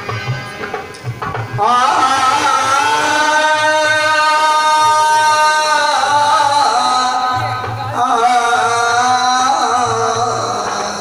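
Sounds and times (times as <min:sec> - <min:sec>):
hand drum beats: 0:00.0 - 0:01.8.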